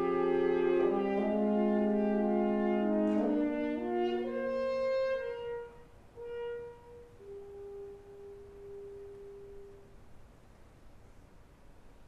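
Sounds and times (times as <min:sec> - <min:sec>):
woodwind quintet sustained note: 0:00.0 - 0:10.0.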